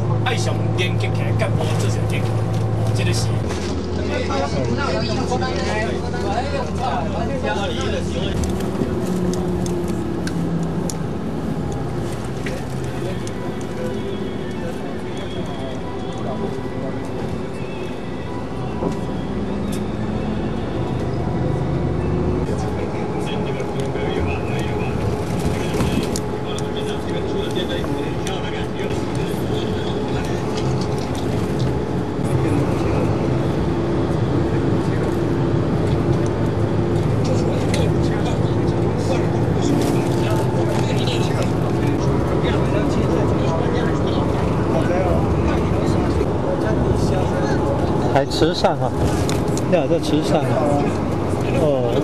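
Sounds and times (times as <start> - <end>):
indistinct voices: 0.0 - 52.0
vehicle engine and road noise: 0.0 - 52.0.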